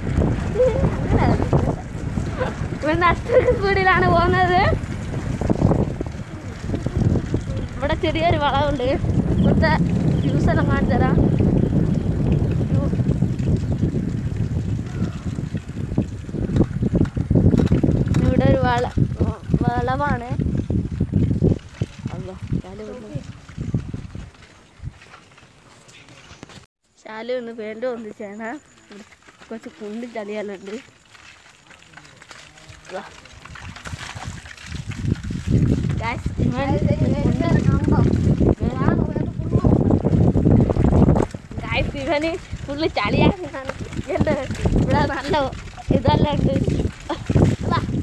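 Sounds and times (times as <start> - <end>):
wind on microphone: 0.0 - 25.2, 32.6 - 48.0
rumbling on wet road: 0.0 - 26.7, 29.4 - 48.0.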